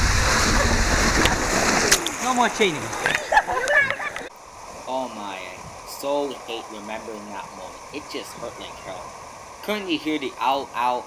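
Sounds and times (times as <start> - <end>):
splash into pool: 0.0 - 4.2
water rushing through waterslide: 0.0 - 11.0.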